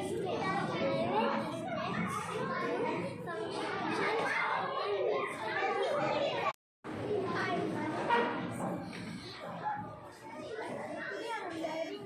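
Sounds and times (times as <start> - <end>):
children's voices and chatter: 0.0 - 12.0.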